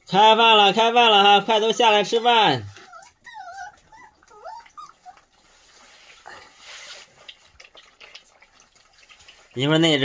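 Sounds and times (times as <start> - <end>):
puppies whimpering: 1.8 - 5.6.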